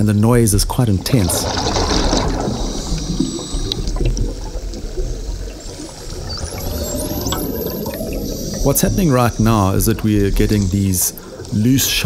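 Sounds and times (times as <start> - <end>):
underwater rushing and crackling bubbles: 0.0 - 12.0.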